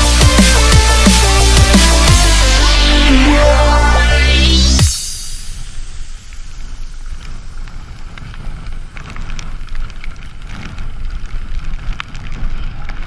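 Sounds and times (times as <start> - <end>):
bike rattling over bumps: 6.2 - 13.0
wind buffeting microphone: 6.4 - 13.0.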